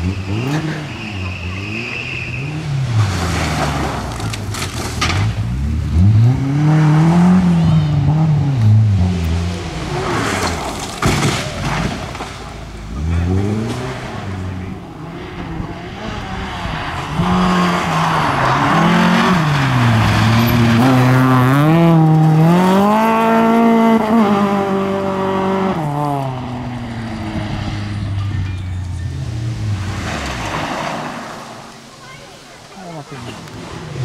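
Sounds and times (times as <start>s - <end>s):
rally car engines revving: 0.0s - 34.0s.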